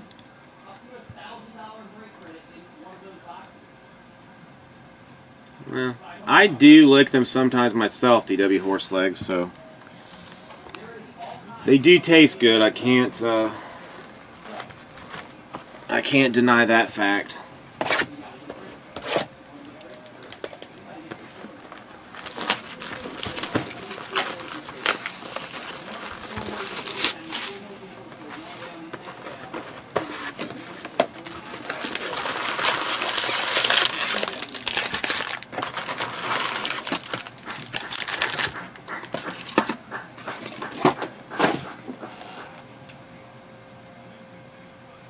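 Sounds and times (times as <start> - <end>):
foil packs rustling and crinkling: 19.0 - 39.6.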